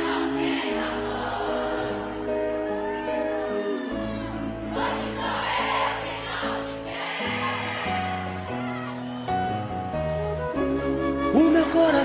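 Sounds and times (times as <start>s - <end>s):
group vocals: 0.0s - 8.5s.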